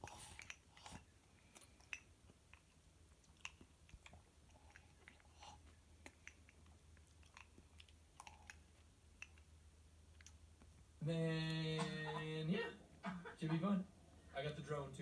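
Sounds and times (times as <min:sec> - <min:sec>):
person chewing: 0:00.0 - 0:10.8
low steady hum: 0:00.0 - 0:15.0.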